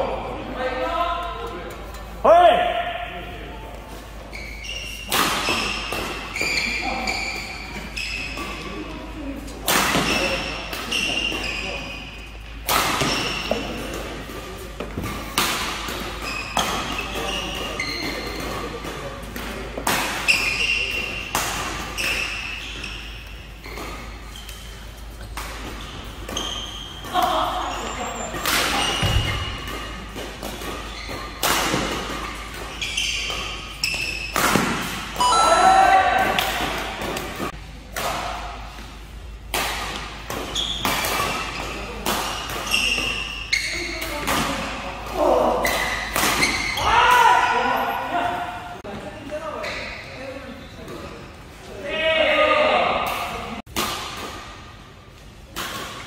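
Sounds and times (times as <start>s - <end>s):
players' voices and shouts: 0.0s - 4.0s, 35.2s - 37.4s, 42.7s - 50.7s, 51.6s - 53.6s
rackets striking shuttlecock: 28.3s - 35.5s.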